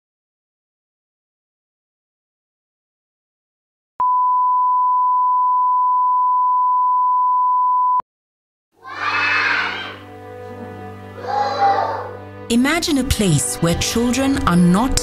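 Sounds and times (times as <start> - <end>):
low steady music drone: 10.0 - 11.4.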